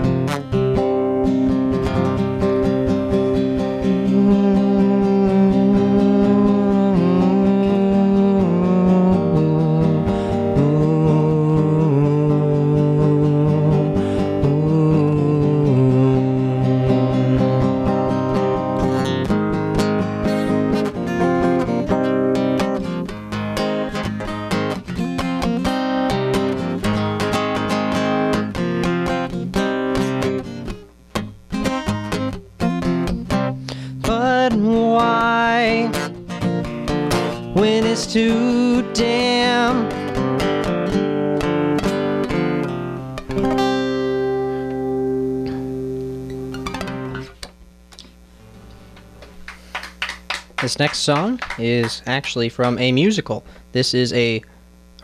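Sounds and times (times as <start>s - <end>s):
acoustic guitar strumming: 0.0s - 55.0s.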